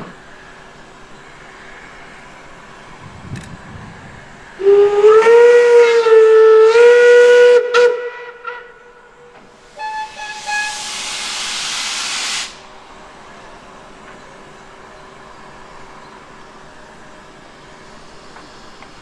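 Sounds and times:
steam locomotive whistle: 0:04.6 - 0:12.6
hiss of escaping steam: 0:09.5 - 0:12.7.

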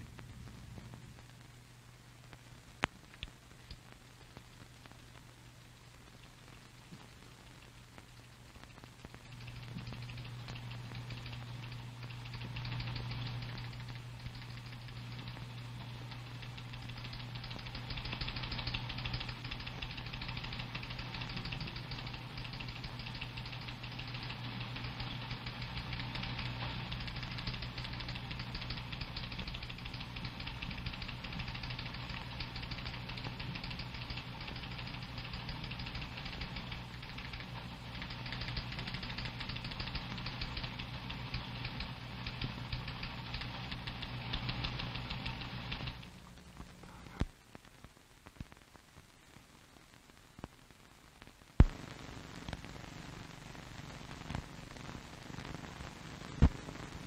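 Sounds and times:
crackle and hiss: 0:00.0 - 0:57.0
low electrical hum: 0:00.0 - 0:57.0.

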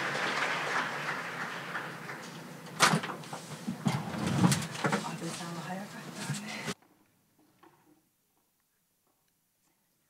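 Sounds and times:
people moving in a hall: 0:00.0 - 0:10.0.

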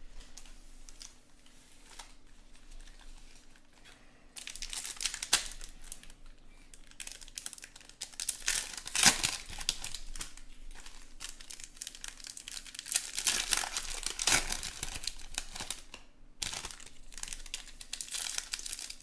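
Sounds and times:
foil wrappers crinkling and tearing: 0:00.2 - 0:19.0.

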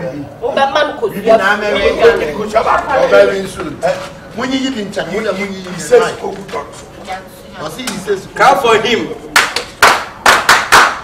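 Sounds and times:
hands clapping: 0:09.3 - 0:11.0.

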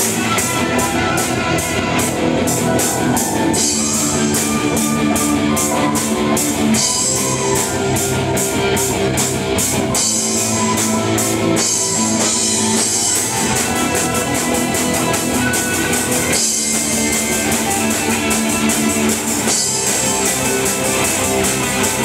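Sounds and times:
symphonic metal band playing: 0:00.0 - 0:22.0.

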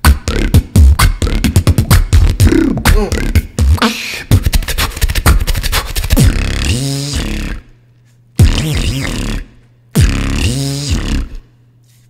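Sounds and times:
beatboxing kick and snare clicks: 0:00.0 - 0:07.8, 0:08.4 - 0:11.4
vocal bass bending: 0:00.0 - 0:07.8, 0:08.4 - 0:11.6.

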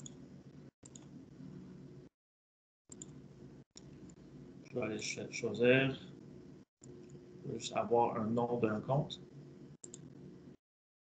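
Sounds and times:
low line noise hum: 0:00.0 - 0:02.1, 0:02.9 - 0:10.6
computer mouse clicks: 0:00.8 - 0:01.2, 0:02.9 - 0:03.2, 0:09.8 - 0:10.2.

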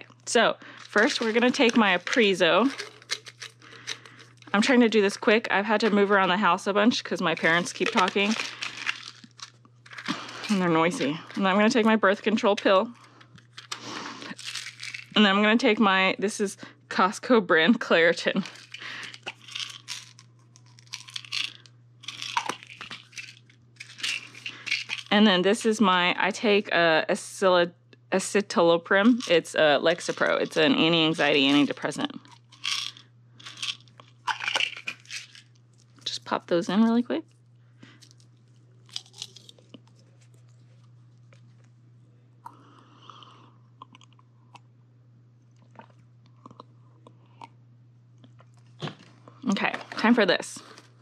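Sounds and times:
steady low hum: 0:00.0 - 0:51.0
tablets rattling in bottles: 0:00.3 - 0:15.3, 0:18.2 - 0:25.2, 0:28.9 - 0:36.1
bottle caps clicking: 0:07.4 - 0:09.2, 0:32.6 - 0:35.4.

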